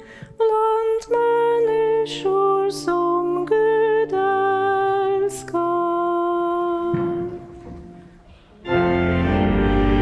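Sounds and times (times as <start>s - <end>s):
congregation rustling: 3.2s - 10.0s.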